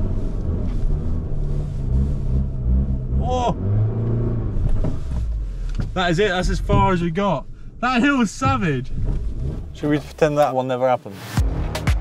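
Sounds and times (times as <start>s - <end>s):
car engine straining uphill: 0.0s - 10.5s
person shouting: 3.2s - 3.6s.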